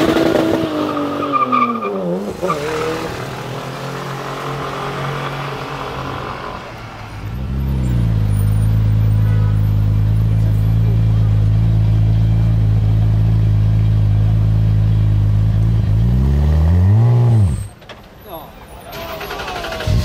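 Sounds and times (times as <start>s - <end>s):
car engine droning and revving: 0.0s - 17.7s.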